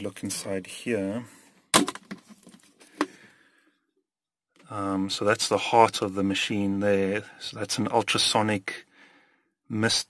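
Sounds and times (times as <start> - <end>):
plastic lid rustling: 1.8 - 3.2.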